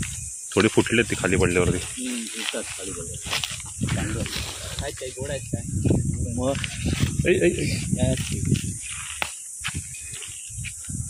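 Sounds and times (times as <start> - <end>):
voices talking: 0.0 - 10.5
steady high hiss: 0.0 - 11.0.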